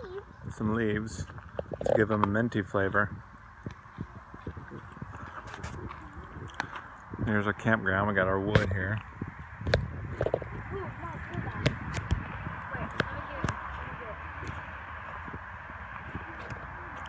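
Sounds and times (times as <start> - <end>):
campfire wood crackling: 0.0 - 17.0.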